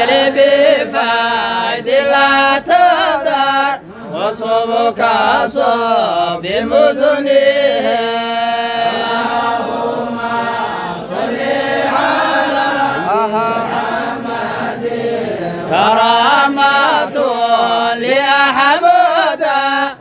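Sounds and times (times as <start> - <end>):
group chanting a devotional song: 0.0 - 20.0.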